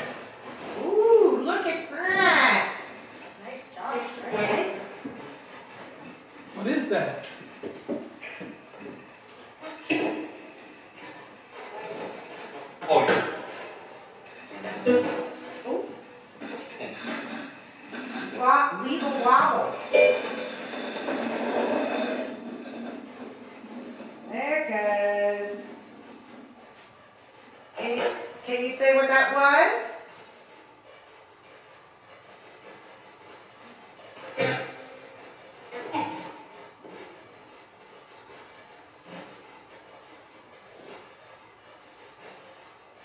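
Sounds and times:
spinning top whirring on wooden floor: 0:00.0 - 0:12.8, 0:13.4 - 0:43.0.

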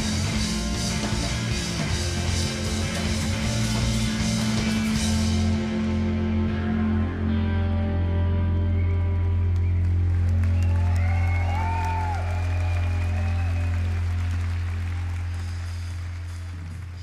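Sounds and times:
rock band music: 0:00.0 - 0:11.6
low bass drone: 0:00.0 - 0:17.0.

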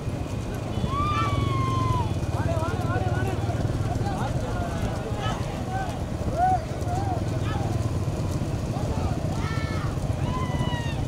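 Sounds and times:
motorcycle engines rumbling: 0:00.0 - 0:11.0
people shouting: 0:00.6 - 0:07.8, 0:08.7 - 0:11.0.

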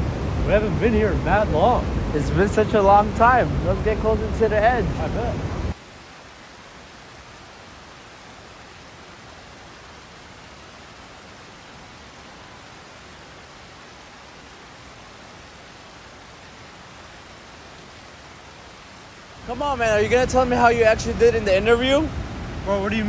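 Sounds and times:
waterfall rushing roar: 0:00.0 - 0:23.0.

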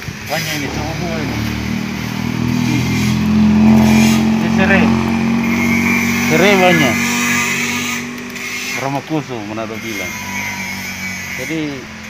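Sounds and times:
motor engine humming: 0:00.0 - 0:12.0.

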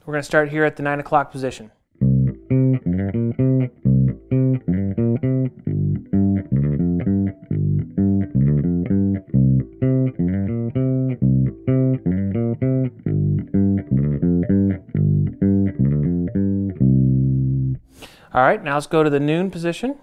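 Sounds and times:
plucked bass guitar notes: 0:02.0 - 0:17.9.

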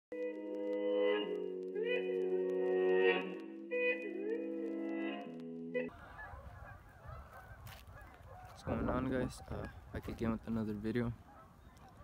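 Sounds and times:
distant geese honking: 0:05.8 - 0:10.0, 0:11.1 - 0:12.0
wind on microphone: 0:06.0 - 0:10.0.

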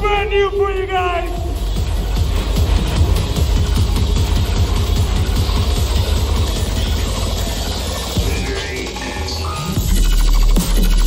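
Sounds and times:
loud dubstep music: 0:00.0 - 0:11.0.

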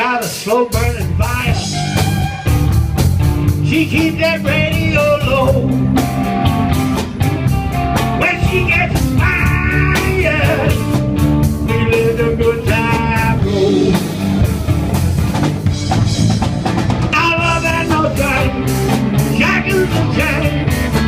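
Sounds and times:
blues-rock band playing live: 0:00.0 - 0:21.0
lead melody bending in pitch: 0:01.4 - 0:03.5.

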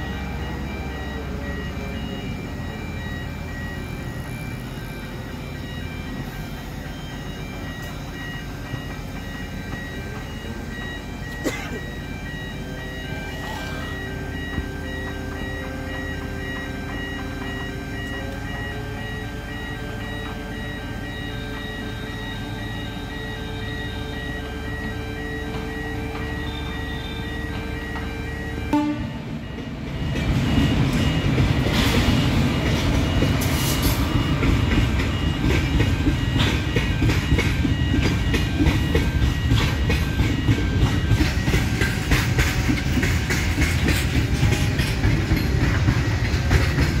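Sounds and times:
construction machinery engine hum: 0:00.0 - 0:47.0
train passing: 0:00.0 - 0:47.0
train wheels clattering: 0:29.5 - 0:47.0.

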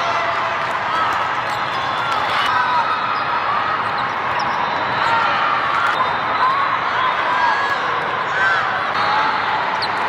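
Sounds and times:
crowd chatter: 0:00.0 - 0:10.0
sneakers squeaking on court: 0:03.1 - 0:05.1.

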